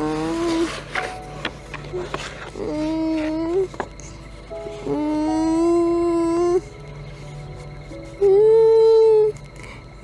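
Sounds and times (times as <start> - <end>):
woman moaning note: 4.7 - 6.7, 8.1 - 9.4.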